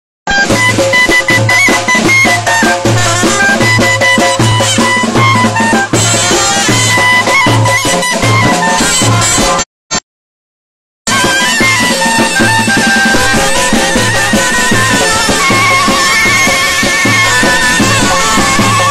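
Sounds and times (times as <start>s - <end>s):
clarinets playing melody: 0.3s - 9.6s, 11.1s - 18.9s
steady drum beat: 0.3s - 9.6s, 11.1s - 18.9s.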